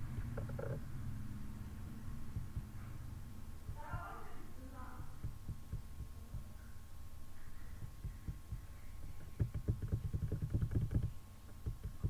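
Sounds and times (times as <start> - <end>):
faint electrical whine: 0.0 - 12.0
keyboard and mouse clicks: 7.8 - 12.0.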